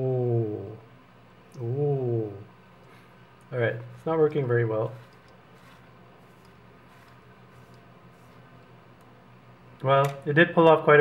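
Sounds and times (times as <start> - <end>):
low room hum: 0.0 - 11.0
man speaking: 1.6 - 2.5, 3.5 - 5.1
razor scratching arm hair: 3.9 - 8.6.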